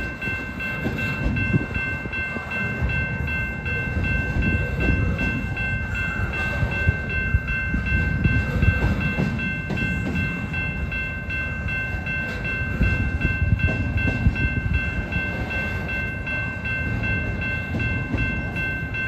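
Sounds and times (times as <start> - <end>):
freight train wheels rumbling: 0.0 - 19.0
pulsing high ringing: 0.0 - 19.0
wheels clacking over rail joints: 0.0 - 19.0.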